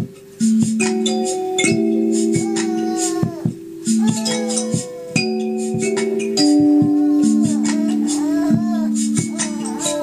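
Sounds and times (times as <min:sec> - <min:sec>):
kalimba with delay: 0:00.0 - 0:10.0
high singing voice: 0:01.2 - 0:10.0.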